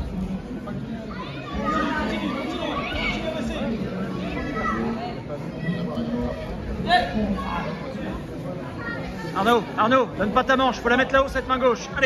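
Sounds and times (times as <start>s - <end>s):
crowd chatter in sports hall: 0.0s - 12.0s.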